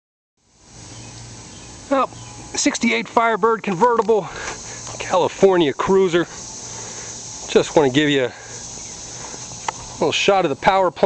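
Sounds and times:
faint hiss: 0:00.4 - 0:11.0
steady low hum: 0:00.4 - 0:11.0.

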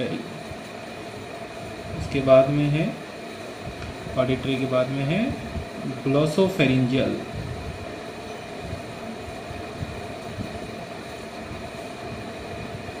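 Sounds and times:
air conditioner humming: 0:00.0 - 0:13.0.

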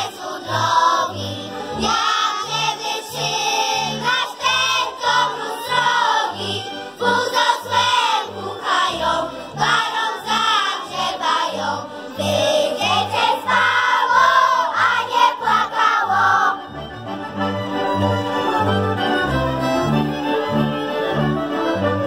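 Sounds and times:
children's group singing: 0:00.0 - 0:16.6
instrumental accompaniment pulsing bass: 0:00.0 - 0:22.0.

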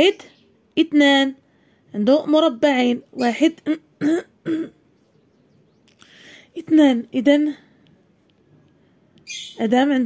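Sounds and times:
woman clearing her throat: 0:03.6 - 0:04.8.

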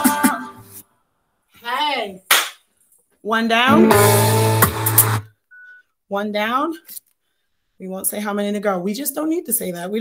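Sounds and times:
sharp clap: 0:02.3 - 0:02.7.

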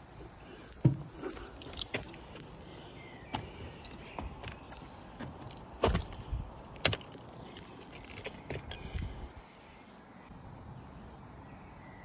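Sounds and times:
light clinks and knocks: 0:00.9 - 0:02.4, 0:03.8 - 0:09.0.

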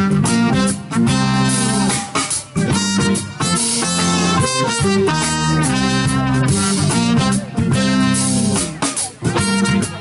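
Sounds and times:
electric guitar: 0:00.0 - 0:10.0
live funk band playing: 0:00.0 - 0:10.0.

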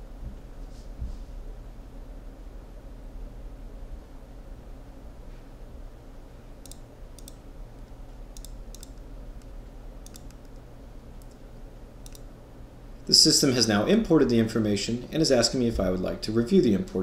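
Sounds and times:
background hiss: 0:05.0 - 0:17.0.

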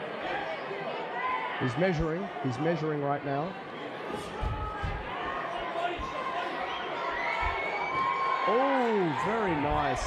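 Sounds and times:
crowd cheering and shouting: 0:03.6 - 0:10.0
dull thuds: 0:04.4 - 0:05.2.

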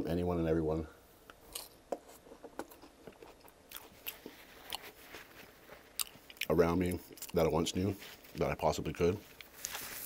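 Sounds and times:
chewing crunchy chip: 0:02.6 - 0:05.1, 0:05.7 - 0:07.5.

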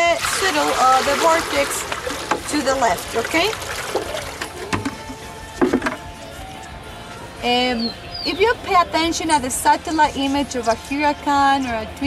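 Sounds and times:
water splashing into metal basin: 0:00.0 - 0:06.0.

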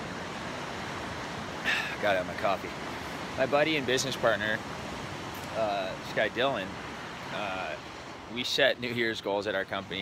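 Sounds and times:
ocean surf breaking: 0:00.0 - 0:10.0.

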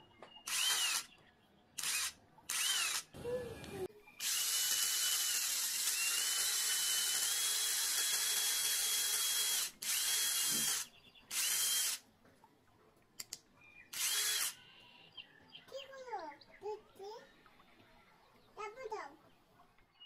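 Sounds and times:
cordless drill whining: 0:00.5 - 0:01.0, 0:01.8 - 0:12.0, 0:13.9 - 0:14.6.

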